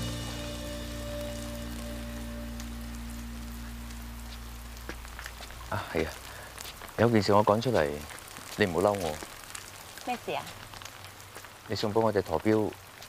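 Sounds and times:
soft sustained chord music: 0:00.0 - 0:04.8
rain falling: 0:00.0 - 0:13.0.

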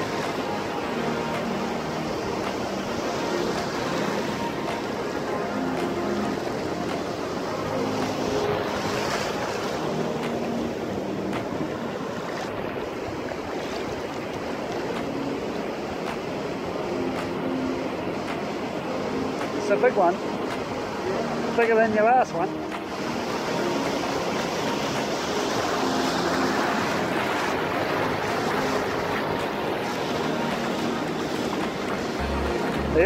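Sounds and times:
small waves breaking on beach: 0:00.0 - 0:33.0.

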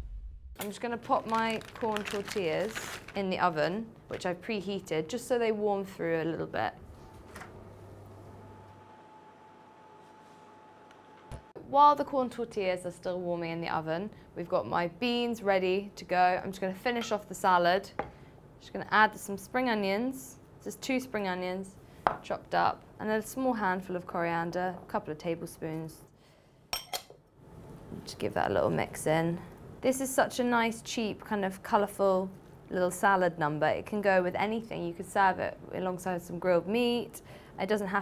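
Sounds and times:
low hum: 0:00.0 - 0:00.6
glass clinking on glass bowl: 0:26.7 - 0:27.2.

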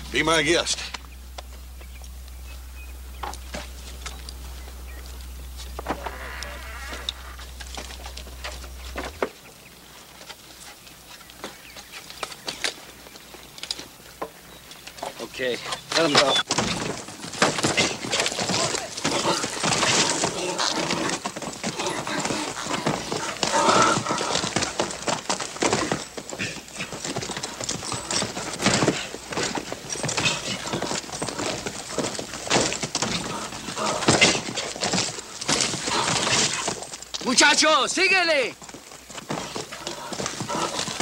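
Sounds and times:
hooves pounding on dirt: 0:00.0 - 0:41.0
horse whinnying: 0:05.8 - 0:09.2, 0:17.6 - 0:29.2, 0:39.3 - 0:41.0.

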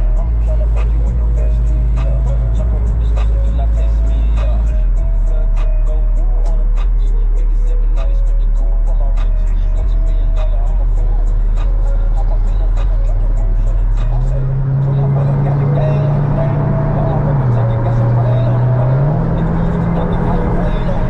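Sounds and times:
car engine and road drone: 0:00.0 - 0:21.0
music: 0:00.0 - 0:21.0.

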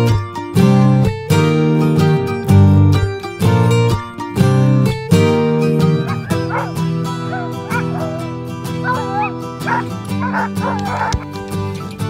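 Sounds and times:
strummed acoustic guitar music: 0:00.0 - 0:12.0
dogs whining and yipping: 0:05.8 - 0:11.3.

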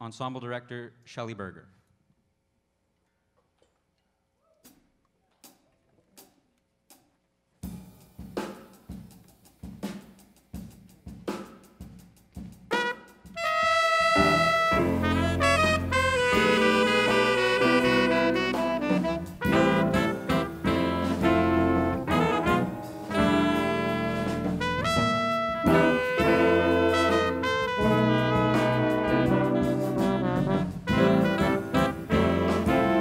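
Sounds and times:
jazz ensemble rhythm section: 0:07.6 - 0:33.0
horns playing held notes: 0:12.7 - 0:33.0.

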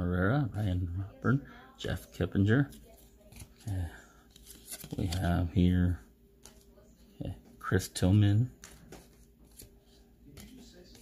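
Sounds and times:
cards rustling: 0:01.9 - 0:05.5, 0:08.5 - 0:11.0.

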